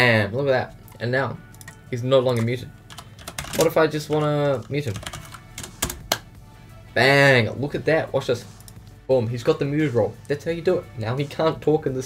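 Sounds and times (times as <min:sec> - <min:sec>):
faint background music: 0:00.0 - 0:12.0
computer keyboard clicks: 0:02.9 - 0:03.7, 0:04.6 - 0:06.2.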